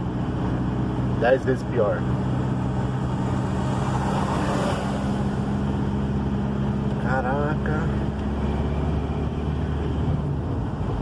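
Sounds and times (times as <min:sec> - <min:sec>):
car engine running: 0:00.0 - 0:11.0
tyre and road noise: 0:00.0 - 0:11.0
vehicle passing: 0:00.0 - 0:11.0.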